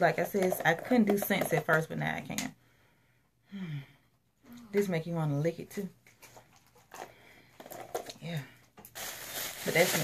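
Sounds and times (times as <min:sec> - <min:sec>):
handling plastic jar: 0:06.0 - 0:10.0.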